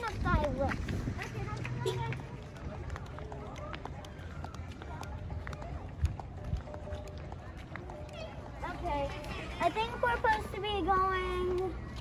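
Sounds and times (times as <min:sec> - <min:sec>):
children's footsteps: 0:00.0 - 0:12.0
distant voices: 0:00.0 - 0:12.0.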